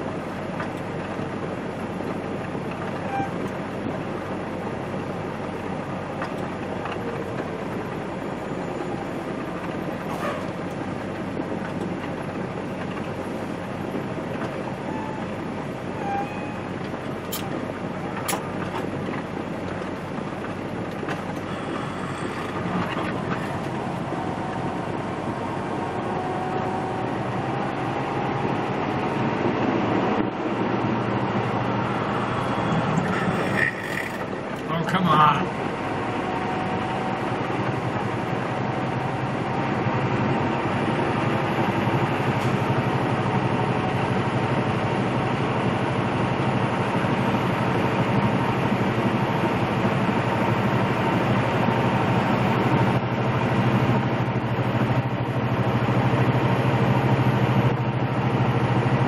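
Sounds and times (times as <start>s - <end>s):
road and tyre noise: 0.0s - 59.0s
truck diesel engine running: 0.0s - 59.0s.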